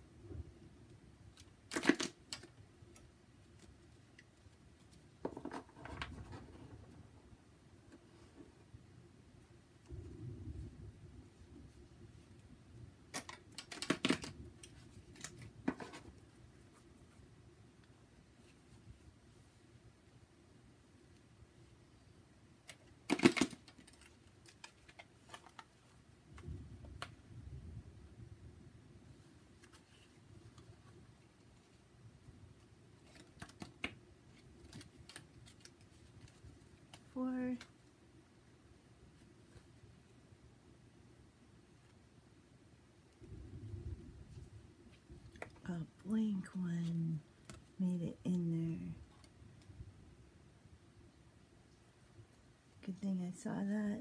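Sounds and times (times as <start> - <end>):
cards rustling: 13.1 - 16.8, 22.7 - 25.8, 32.5 - 37.8.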